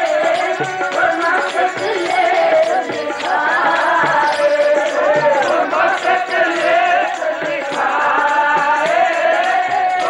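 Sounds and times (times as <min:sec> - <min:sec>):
harmonium: 0:00.0 - 0:10.0
person singing: 0:00.0 - 0:10.0
tabla strokes: 0:00.0 - 0:10.0.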